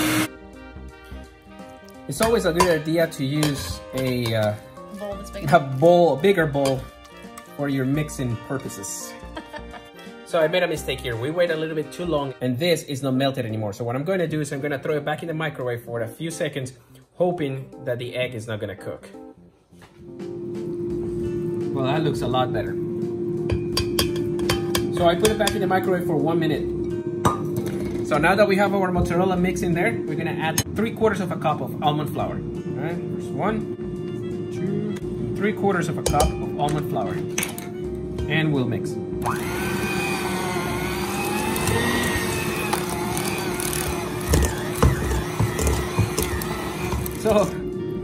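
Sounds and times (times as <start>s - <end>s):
electric hand mixer whining: 0.0s - 0.3s, 39.1s - 47.7s
guitar music: 0.0s - 12.2s, 20.0s - 48.0s.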